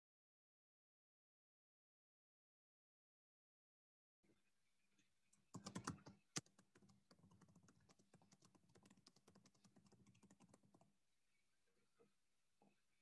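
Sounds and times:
computer keyboard typing: 0:05.5 - 0:10.9.

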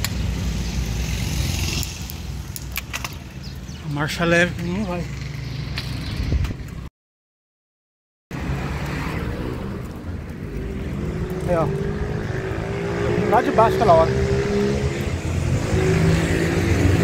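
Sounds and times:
road rumble: 0:00.0 - 0:06.9, 0:08.3 - 0:17.0
traffic noise: 0:00.0 - 0:06.9, 0:08.3 - 0:17.0.

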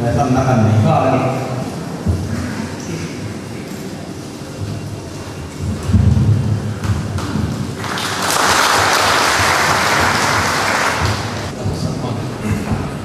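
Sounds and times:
audience applauding: 0:07.2 - 0:11.5.

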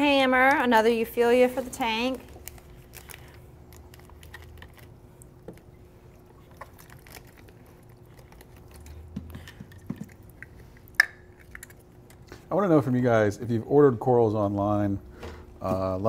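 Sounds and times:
plastic bag crinkling: 0:02.0 - 0:05.4, 0:06.3 - 0:10.5.

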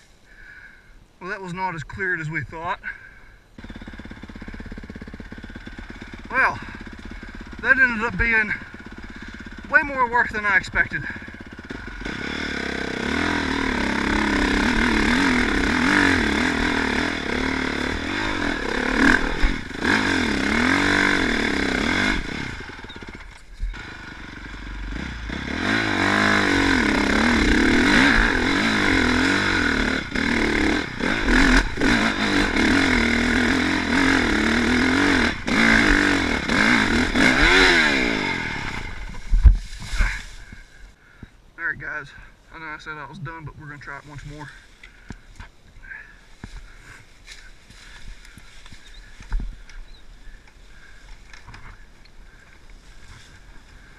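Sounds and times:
dirt bike engine revving: 0:02.8 - 0:41.0.

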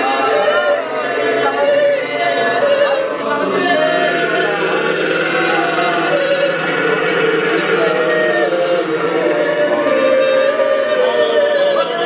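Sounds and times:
group singing a cappella harmony: 0:00.0 - 0:12.0.

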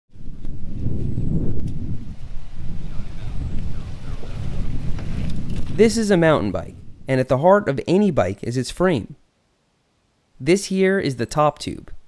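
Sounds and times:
wind buffeting microphone: 0:00.1 - 0:08.4.

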